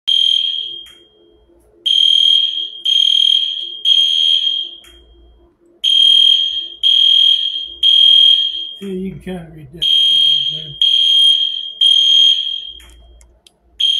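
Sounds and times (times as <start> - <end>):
smoke alarm beeping: 0.1 - 9.1, 9.8 - 13.9.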